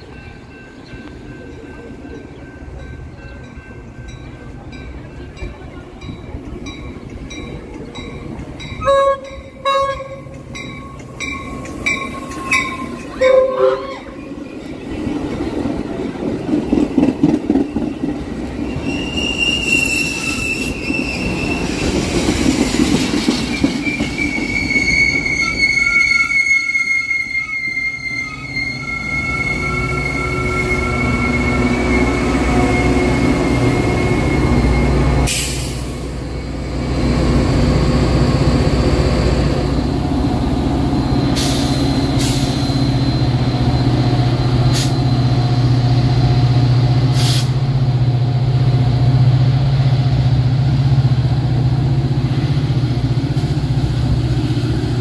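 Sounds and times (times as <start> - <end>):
train bell ringing: 0.0 - 15.0, 27.1 - 35.3, 36.0 - 46.8
diesel locomotive rumbling: 0.0 - 55.0
train cars rolling by: 0.0 - 55.0
train horn blasts: 8.8 - 10.3, 12.1 - 14.2
train wheel squeal: 10.6 - 14.7, 16.6 - 37.0, 37.6 - 47.6.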